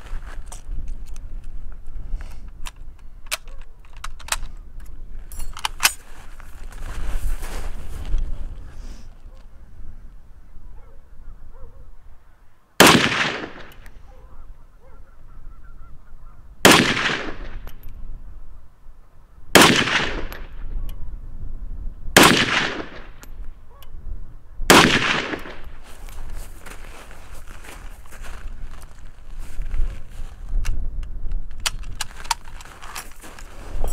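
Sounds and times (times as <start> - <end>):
rifle shots with echo: 12.8 - 13.8, 16.6 - 17.6, 19.5 - 20.6, 22.2 - 23.2, 24.7 - 25.7.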